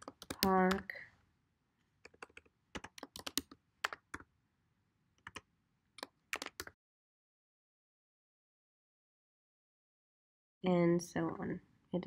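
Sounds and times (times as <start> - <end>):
keyboard typing clicks: 0.0 - 0.8, 2.1 - 4.2, 5.2 - 5.4, 6.0 - 6.8.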